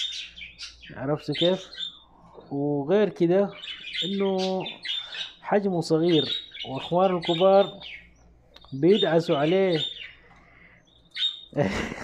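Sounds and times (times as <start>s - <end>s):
chicks chirping: 0.0s - 12.0s.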